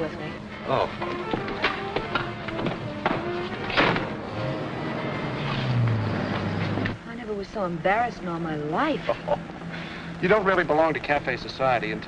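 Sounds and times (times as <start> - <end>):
car engine humming: 0.0 - 12.0.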